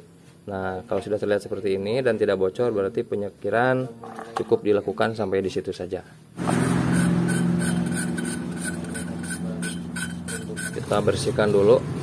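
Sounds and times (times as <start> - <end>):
steady hum: 0.0 - 12.0
valve grinding against seat: 6.4 - 11.1.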